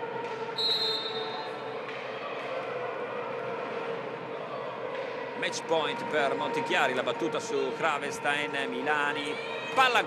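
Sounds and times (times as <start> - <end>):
sports hall background noise: 0.0 - 10.0
referee's whistle blast: 0.6 - 1.4.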